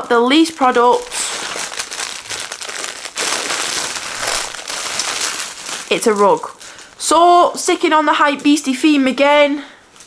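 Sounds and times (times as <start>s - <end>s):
plastic packaging crinkling: 0.2s - 7.2s.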